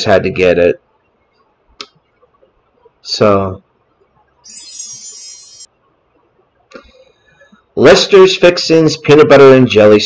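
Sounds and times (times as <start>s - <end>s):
high shimmering chime jingle: 4.4s - 5.7s.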